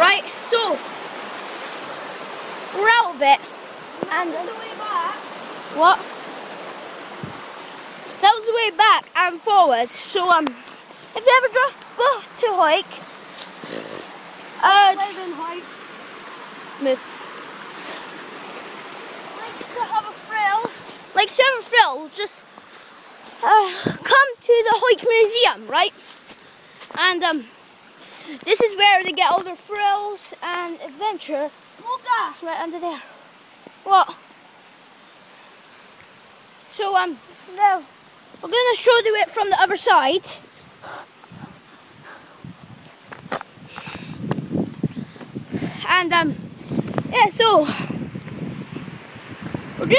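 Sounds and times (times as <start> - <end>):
waterfall rushing: 0.0 - 49.9
footsteps on paved road: 10.4 - 12.0, 42.8 - 45.4.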